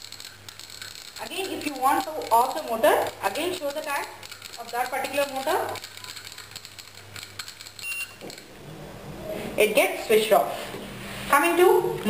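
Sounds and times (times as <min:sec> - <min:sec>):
short high-pitched beep: 0:07.8 - 0:08.2.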